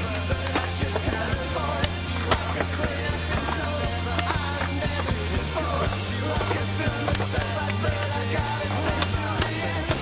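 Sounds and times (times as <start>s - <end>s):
skateboard clacks: 0.0s - 10.0s
soundtrack music with bass and beat: 0.0s - 10.0s.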